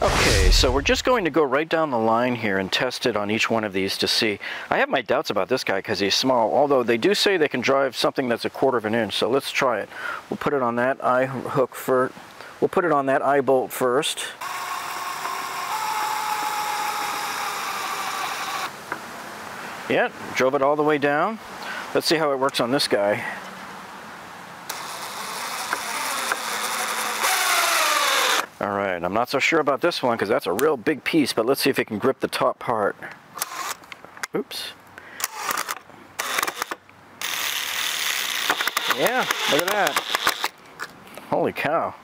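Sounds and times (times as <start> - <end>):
cordless drill whining: 14.4 - 18.8, 24.7 - 28.5, 33.4 - 33.8, 35.2 - 40.5.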